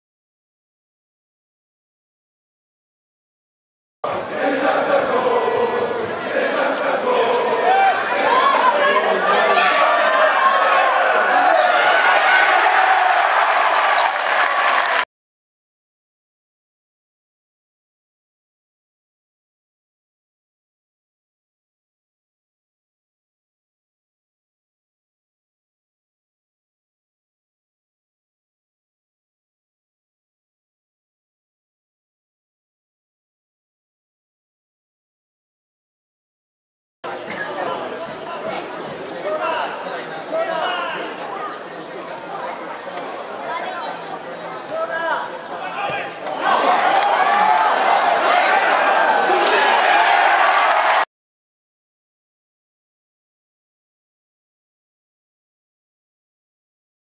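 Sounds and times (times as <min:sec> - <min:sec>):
indistinct chatter of voices: 0:04.0 - 0:13.5, 0:37.1 - 0:51.1
crowd cheering and applauding: 0:09.4 - 0:15.1, 0:46.3 - 0:51.1.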